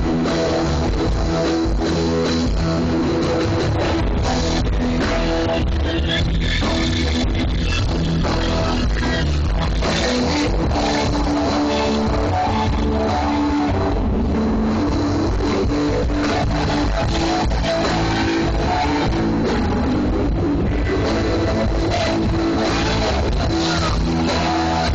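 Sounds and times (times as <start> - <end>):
loud rock music with singing: 0.0 - 24.9.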